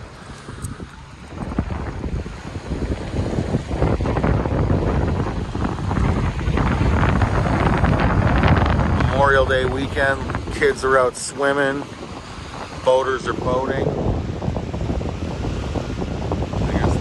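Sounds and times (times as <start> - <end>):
waves lapping on pebble shore: 0.0 - 17.0
wind buffeting microphone: 0.0 - 17.0.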